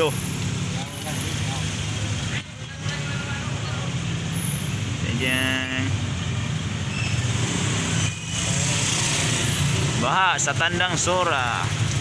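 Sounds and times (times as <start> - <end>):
tyres on a wet road: 0.0 - 12.0.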